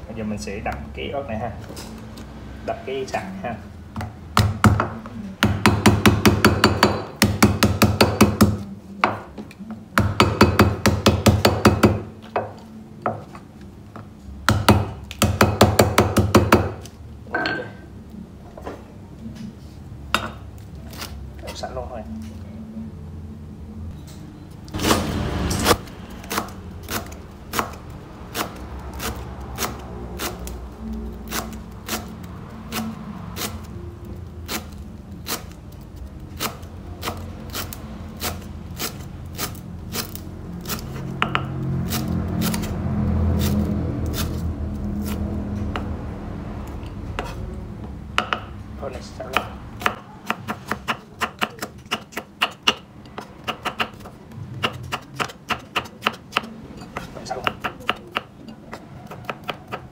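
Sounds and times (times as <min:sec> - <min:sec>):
knife chopping on wooden board: 0:49.3 - 0:59.9.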